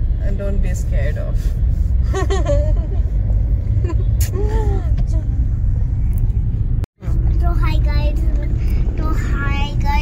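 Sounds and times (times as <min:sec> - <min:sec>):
car road rumble inside cabin: 0:00.0 - 0:10.0.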